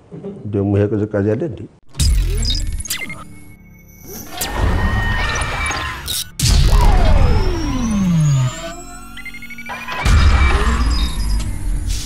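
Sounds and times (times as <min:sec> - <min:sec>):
held rising synth tones: 0:02.3 - 0:11.8
loud synth hit: 0:04.3 - 0:09.0
synth tone sweeping down: 0:04.4 - 0:09.6.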